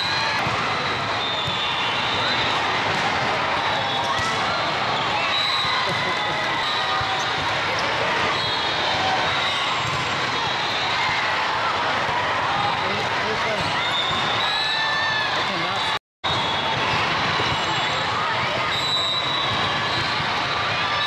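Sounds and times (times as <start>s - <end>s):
volleyballs struck and bouncing: 0.0s - 5.0s.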